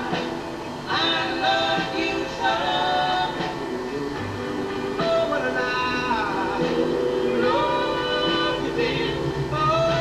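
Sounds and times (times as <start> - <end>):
male vocal group singing soul ballad: 0.0 - 10.0.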